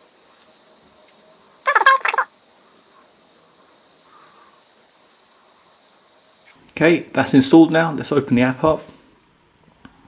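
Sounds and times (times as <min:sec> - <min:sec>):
high-pitched wavering cry: 0:01.6 - 0:02.3.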